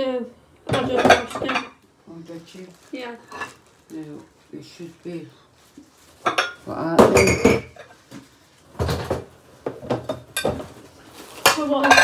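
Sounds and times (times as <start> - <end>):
dishes and cutlery clattering: 0.7 - 1.8, 6.2 - 8.0, 8.8 - 10.8, 11.4 - 12.0.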